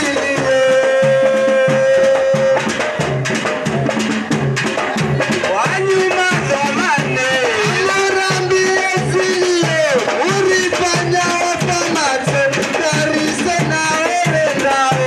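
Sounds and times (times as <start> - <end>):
dance music with drum beat: 0.0 - 15.0.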